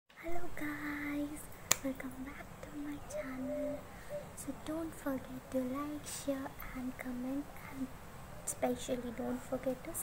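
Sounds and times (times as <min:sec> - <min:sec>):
woman's wordless vocal sounds: 0:00.2 - 0:05.6
finger snap: 0:01.7 - 0:02.0.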